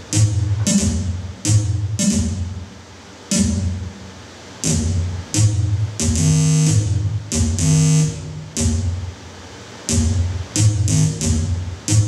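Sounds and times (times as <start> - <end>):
buzzy electronic tones: 0.0 - 2.6, 4.6 - 9.1, 9.9 - 12.0
steady low hum: 0.0 - 12.0.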